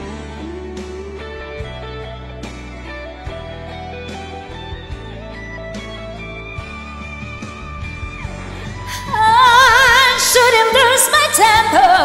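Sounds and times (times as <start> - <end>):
karaoke backing music: 0.0 - 12.0
woman singing with vibrato: 8.8 - 12.0.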